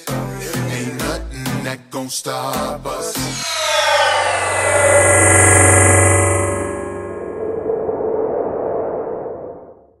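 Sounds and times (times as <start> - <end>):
ringing tone: 3.3 - 9.7.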